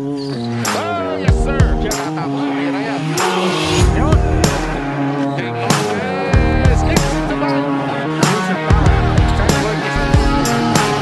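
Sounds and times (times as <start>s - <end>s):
background music with drum beat: 0.0s - 11.0s.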